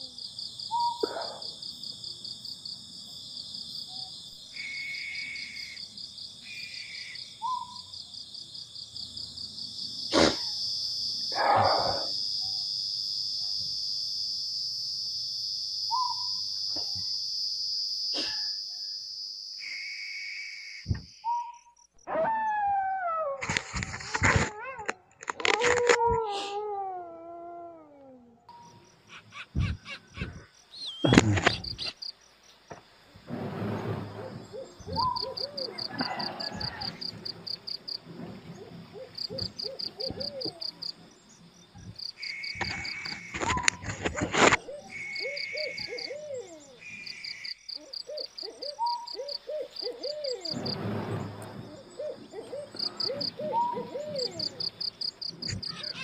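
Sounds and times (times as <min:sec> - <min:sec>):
insects chirping in trills: 0:00.0 - 0:26.5, 0:28.4 - 0:56.0
repeated animal calls: 0:00.7 - 0:01.6, 0:10.0 - 0:12.6, 0:15.9 - 0:17.2, 0:20.6 - 0:32.2, 0:34.3 - 0:37.9, 0:38.6 - 0:41.0, 0:41.8 - 0:50.8, 0:51.8 - 0:56.0.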